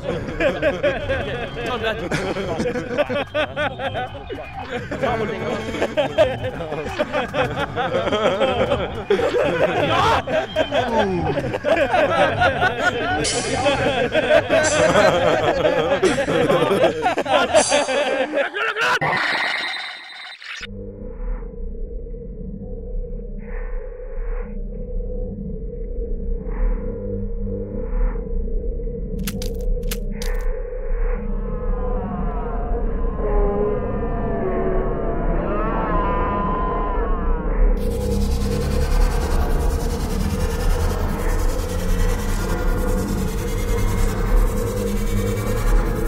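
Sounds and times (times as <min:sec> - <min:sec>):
low ambient drone: 0:00.0 - 0:18.5, 0:19.2 - 0:46.0
warped warbling wash of sound: 0:30.6 - 0:46.0.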